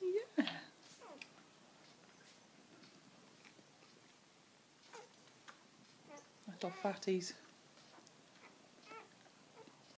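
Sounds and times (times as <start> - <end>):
puppy squeaking: 4.9 - 5.1, 6.1 - 7.0, 7.9 - 9.8.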